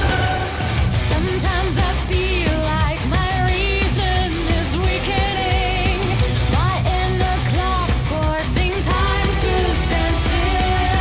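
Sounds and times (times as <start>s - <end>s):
metal band playing: 0.0s - 11.0s
woman singing: 1.1s - 11.0s.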